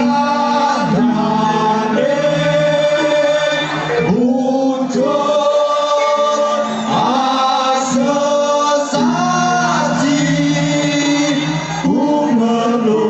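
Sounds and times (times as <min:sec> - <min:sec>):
group of voices singing: 0:00.0 - 0:13.0.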